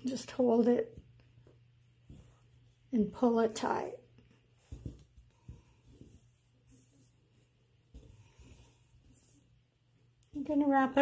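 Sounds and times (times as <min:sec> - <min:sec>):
low steady hum: 0:00.0 - 0:11.0
rustle of cord being handled: 0:00.8 - 0:10.4.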